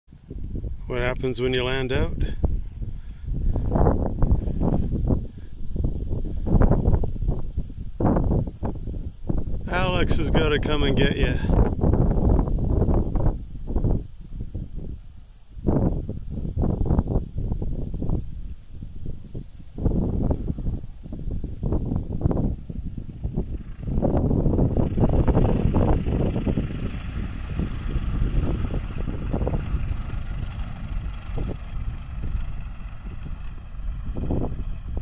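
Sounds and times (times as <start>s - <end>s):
wind buffeting microphone: 0.1s - 35.0s
propeller plane engine: 22.2s - 35.0s.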